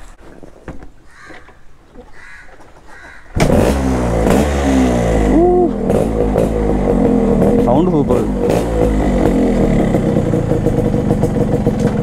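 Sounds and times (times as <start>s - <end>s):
two-stroke motorcycle engine revving: 3.4s - 12.0s.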